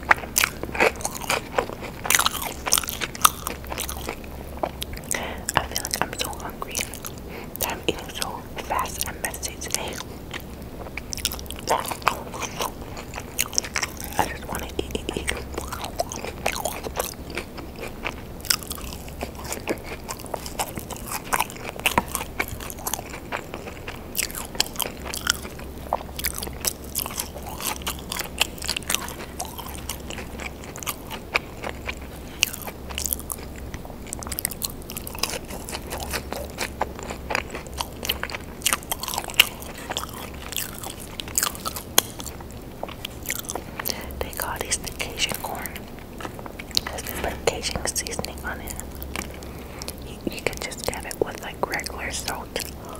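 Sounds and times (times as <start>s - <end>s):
chewing fries: 0.0s - 52.9s.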